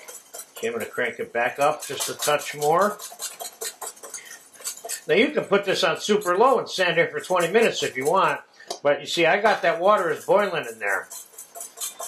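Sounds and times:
whisk clicking against metal bowl: 0:00.0 - 0:12.0.

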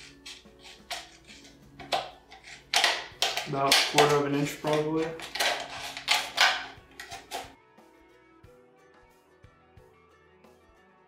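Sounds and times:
scissors cutting plastic bottle: 0:00.0 - 0:07.6
faint background music: 0:00.0 - 0:11.0.

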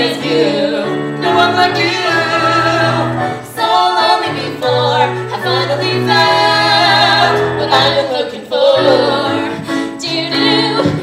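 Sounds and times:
musical accompaniment: 0:00.0 - 0:11.0
two people singing a duet: 0:00.0 - 0:11.0.

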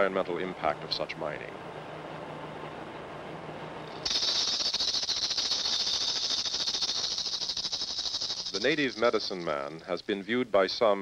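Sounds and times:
faint low hum: 0:00.0 - 0:11.0
hand rattle shaking rapidly: 0:03.9 - 0:09.8.

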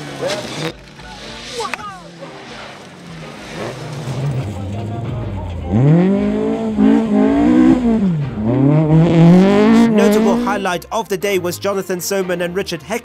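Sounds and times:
rally car engine revving: 0:00.0 - 0:10.8.

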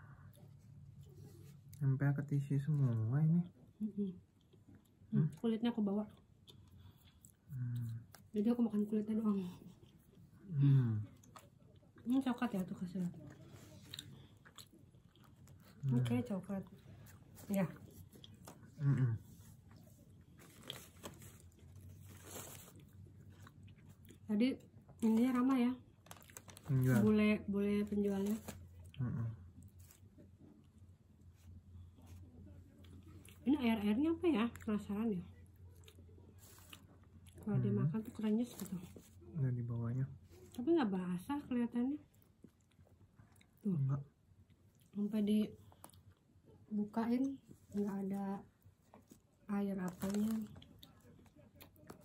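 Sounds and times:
faint chewing of soft cake: 0:00.0 - 0:52.0.

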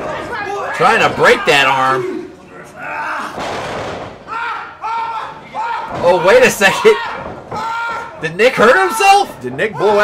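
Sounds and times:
high-pitched shouted cries: 0:04.3 - 0:10.0.

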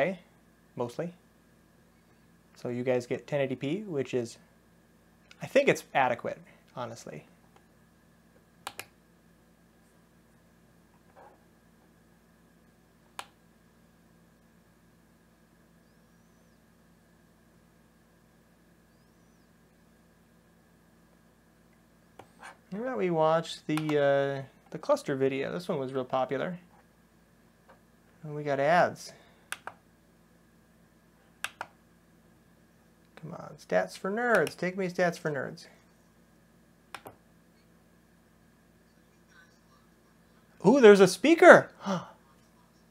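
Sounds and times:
faint steady hum: 0:00.0 - 0:42.9
computer mouse clicks: 0:08.6 - 0:09.0, 0:13.2 - 0:13.4, 0:29.5 - 0:29.8, 0:31.4 - 0:31.8, 0:36.9 - 0:37.2.

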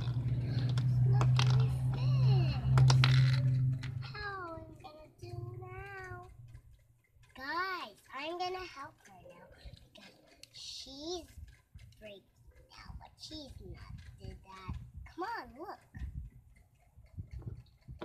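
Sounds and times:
steady low hum: 0:00.0 - 0:18.0
toys clicking: 0:00.0 - 0:18.0.

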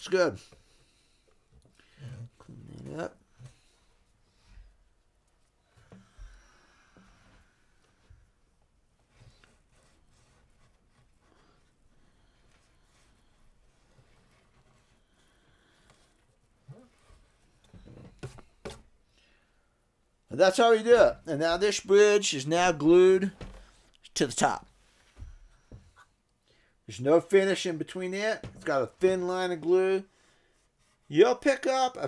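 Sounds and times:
soft knocks and rubbing: 0:15.8 - 0:19.0.

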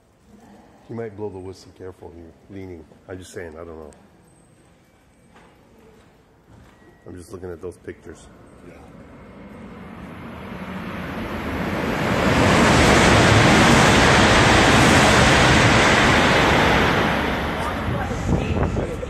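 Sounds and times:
high-speed train passing: 0:07.6 - 0:19.0
wind buffeting microphone: 0:10.6 - 0:19.0.

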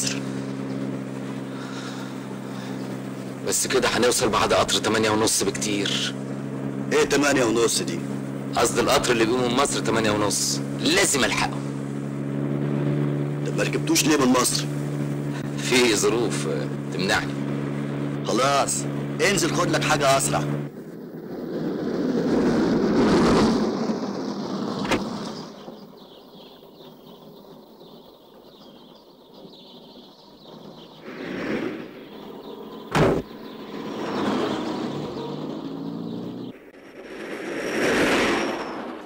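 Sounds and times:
vehicles passing: 0:00.0 - 0:39.0
car door slam: 0:32.9 - 0:33.3.

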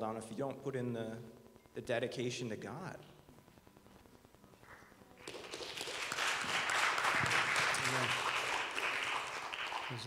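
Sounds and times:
congregation applauding: 0:05.2 - 0:10.0.

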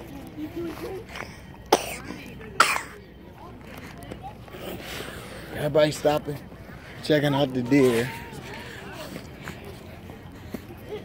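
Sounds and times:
faint background voices: 0:00.0 - 0:11.0.

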